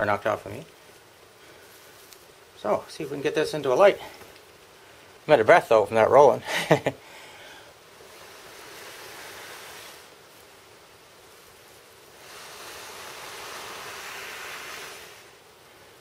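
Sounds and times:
breaths blown into tinder: 0:12.1 - 0:15.4.

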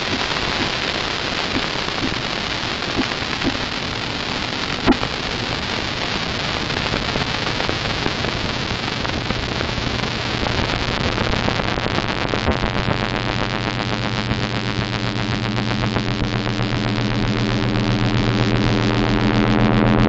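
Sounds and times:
static-like noise: 0:00.0 - 0:20.0
steady low hum: 0:00.0 - 0:20.0.

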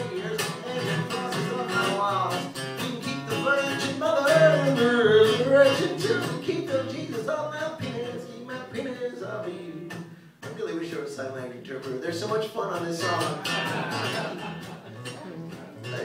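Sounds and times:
acoustic guitar strumming: 0:00.0 - 0:16.0
person singing folk song: 0:00.0 - 0:16.0.

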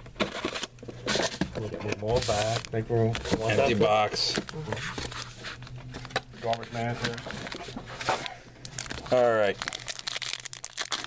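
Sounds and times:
foil packs crinkling: 0:00.2 - 0:11.0.

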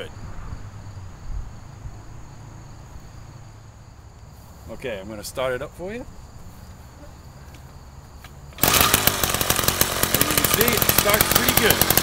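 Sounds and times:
crickets chirring: 0:00.0 - 0:11.9.

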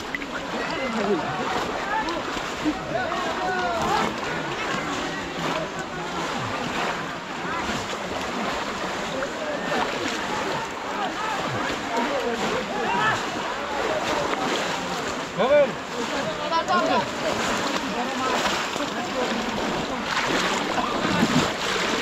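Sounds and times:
splashing in shallow water: 0:00.0 - 0:22.0
voices calling and chattering: 0:00.0 - 0:22.0.

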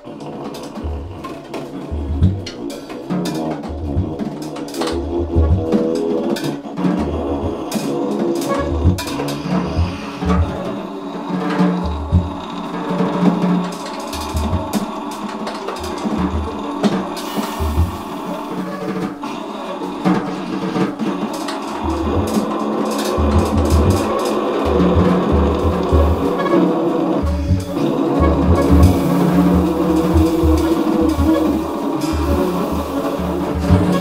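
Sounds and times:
deep low pulses: 0:00.0 - 0:34.0
drum kit playing: 0:00.0 - 0:34.0
saxophones playing: 0:00.0 - 0:34.0.

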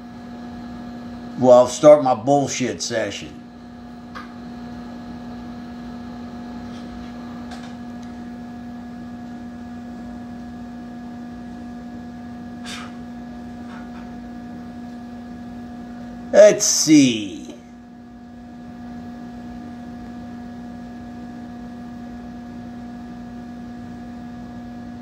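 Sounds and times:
electrical mains hum: 0:00.0 - 0:25.0.

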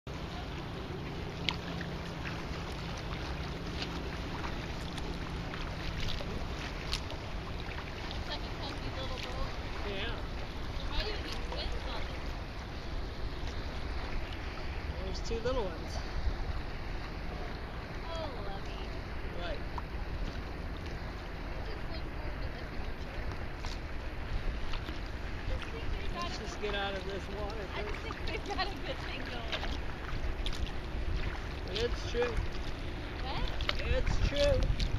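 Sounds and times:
water lapping at hull: 0:00.1 - 0:34.9
wind rumbling on microphone: 0:00.1 - 0:34.9
small sharp splashes: 0:00.3 - 0:14.9, 0:23.0 - 0:34.9.

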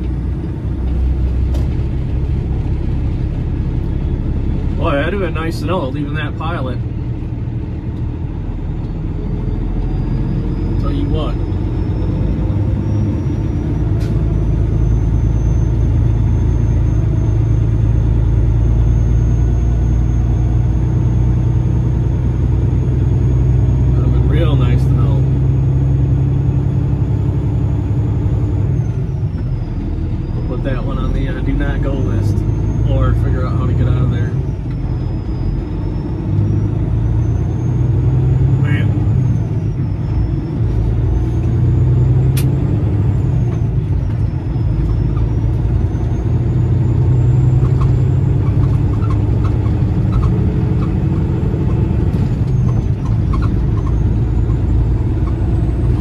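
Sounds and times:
diesel truck engine: 0:00.0 - 0:56.0.

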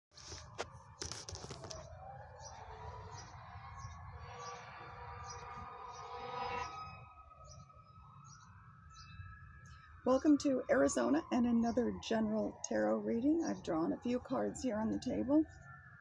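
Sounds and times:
faint emergency siren wailing: 0:00.2 - 0:16.0.

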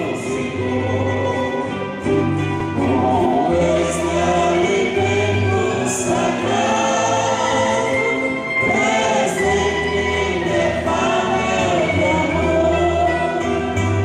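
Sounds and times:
choir singing a hymn: 0:00.0 - 0:14.0
instrumental accompaniment: 0:00.0 - 0:14.0.

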